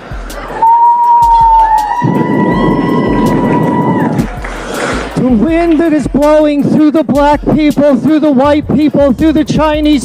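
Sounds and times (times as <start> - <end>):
man blowing into microphone: 0.0 - 5.2
audience applauding and cheering: 0.6 - 5.9.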